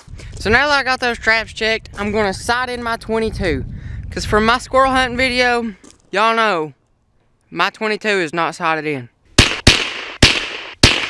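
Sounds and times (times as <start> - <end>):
rifle shots with echo: 9.4 - 11.0.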